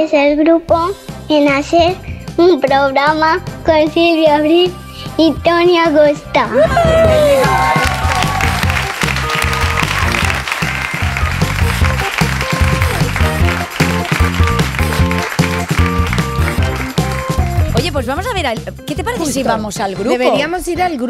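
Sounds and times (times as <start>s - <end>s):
theme music with steady beat: 0.7s - 21.0s
applause: 7.0s - 17.9s.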